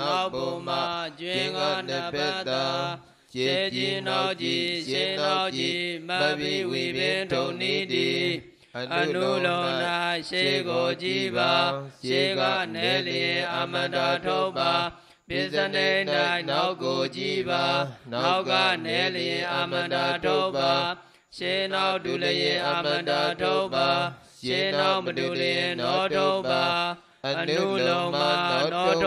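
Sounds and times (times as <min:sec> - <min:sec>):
man chanting: 0:00.0 - 0:29.0.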